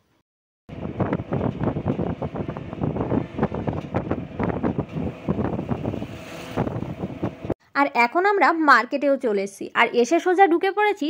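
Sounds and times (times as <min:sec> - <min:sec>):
road noise: 0:00.7 - 0:07.6
wind buffeting microphone: 0:00.7 - 0:07.6.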